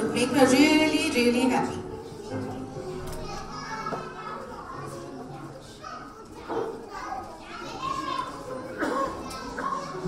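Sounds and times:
children chattering and calling out: 0.0 - 10.0
faint music: 0.0 - 10.0.

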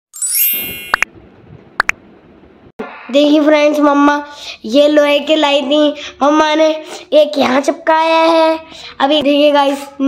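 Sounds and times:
bright chime ding: 0.2 - 1.1.

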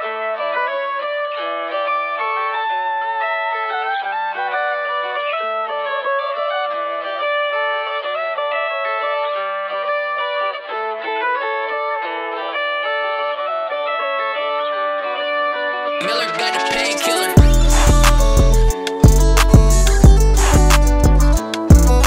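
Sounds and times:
acoustic guitar melody: 11.8 - 22.0.

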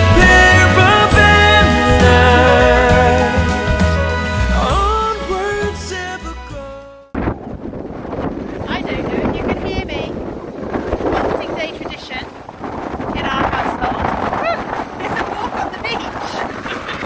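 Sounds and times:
wind buffeting microphone: 7.1 - 17.0
voices: 8.6 - 10.3, 11.0 - 12.4, 13.0 - 17.0.

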